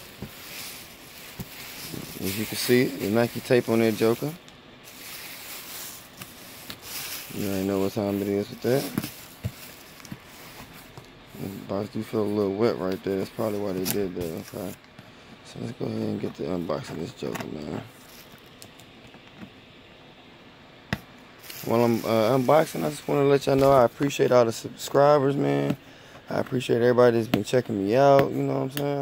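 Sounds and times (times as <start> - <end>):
handling cardboard box: 0.0 - 14.8
plastic bag rustling: 0.0 - 14.8, 21.4 - 24.2.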